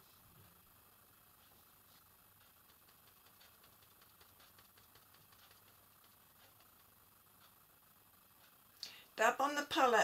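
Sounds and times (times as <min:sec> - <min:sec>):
sponge dabbing on palette: 0:01.4 - 0:07.0.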